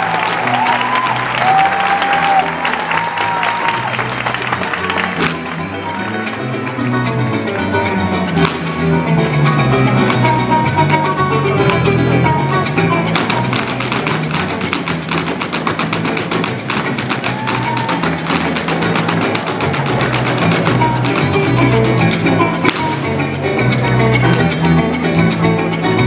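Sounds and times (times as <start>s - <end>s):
band playing harp-led folk music: 0.0s - 26.0s.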